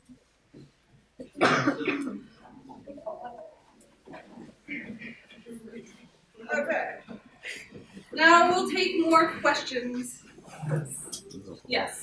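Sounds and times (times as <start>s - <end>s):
faint room chatter: 0.0s - 12.0s
person coughing: 1.2s - 2.4s.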